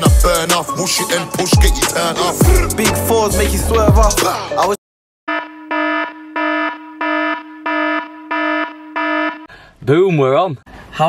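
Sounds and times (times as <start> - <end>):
electronic alarm tone pulsing: 5.3 - 9.5.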